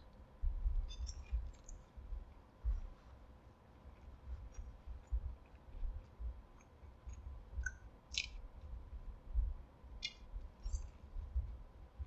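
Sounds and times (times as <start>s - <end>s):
wet mouth clicks and smacks: 6.6s - 8.4s.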